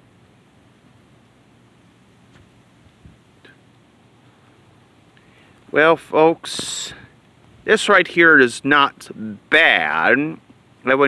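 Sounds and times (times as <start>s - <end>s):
faint background hiss: 0.0s - 11.0s.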